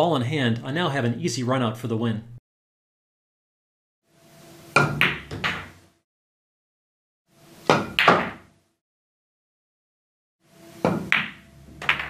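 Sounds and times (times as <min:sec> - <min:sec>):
cue striking ball: 0:04.7 - 0:05.8, 0:07.6 - 0:08.5, 0:10.8 - 0:12.0
pool balls clacking: 0:04.7 - 0:05.8, 0:07.6 - 0:08.5, 0:10.8 - 0:12.0
ball dropping into pocket: 0:07.8 - 0:08.5, 0:10.9 - 0:12.0.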